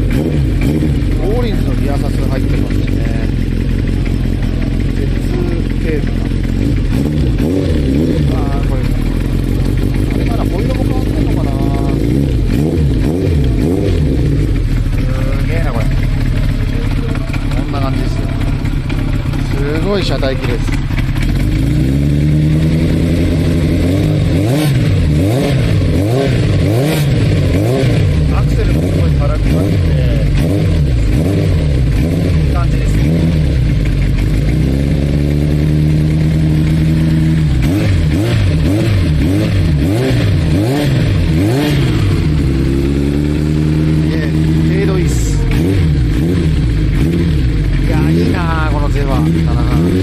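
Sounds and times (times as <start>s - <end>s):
motorcycle engine revving: 0.0s - 50.0s.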